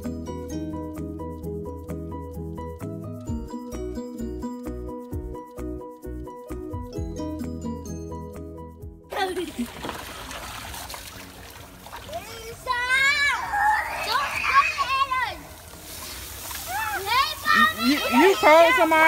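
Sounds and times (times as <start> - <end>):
music: 0.0 - 19.0
water splashing: 9.1 - 19.0
hose spraying water: 9.2 - 19.0
children screaming and shouting: 12.0 - 15.7, 16.5 - 19.0.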